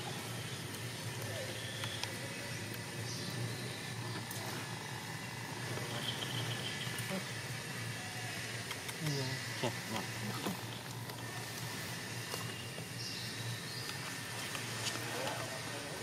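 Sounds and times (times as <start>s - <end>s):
low outdoor hum: 0.0s - 16.0s.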